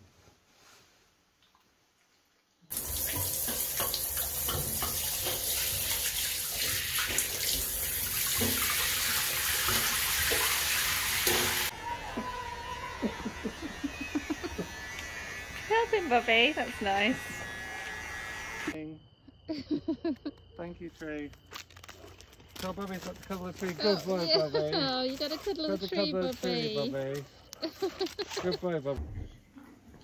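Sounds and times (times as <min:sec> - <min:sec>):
shower water spraying: 0:02.7 - 0:11.7
electric hair clippers buzzing: 0:12.7 - 0:18.8.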